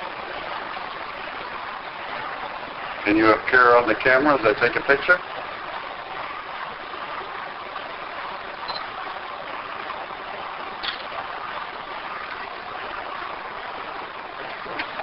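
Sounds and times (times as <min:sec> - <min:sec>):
recorder background hiss: 0:00.0 - 0:15.0.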